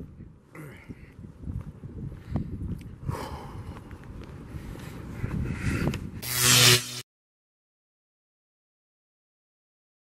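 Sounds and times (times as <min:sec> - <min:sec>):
wind rumbling on microphone: 0:00.0 - 0:06.2.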